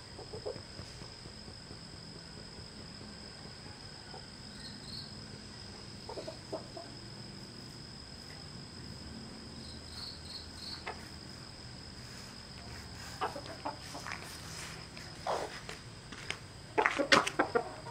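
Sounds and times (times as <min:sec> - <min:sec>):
high insect drone: 0:00.0 - 0:17.9
chicken clucking: 0:00.1 - 0:00.9, 0:06.0 - 0:07.0, 0:12.9 - 0:15.7, 0:16.8 - 0:17.9.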